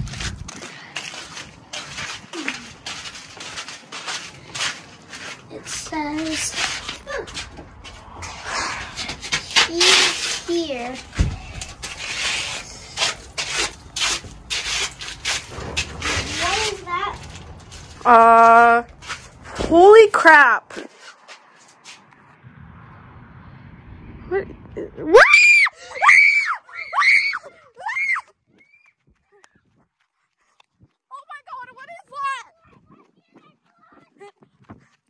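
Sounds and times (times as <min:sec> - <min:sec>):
gritty scraping strokes: 0:00.0 - 0:22.4
child screaming: 0:25.2 - 0:28.3.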